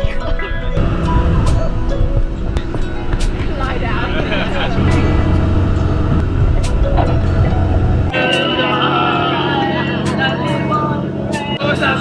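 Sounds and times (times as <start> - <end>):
boat engine drone: 0.0 - 12.0
people chatting: 3.4 - 5.4, 8.1 - 12.0.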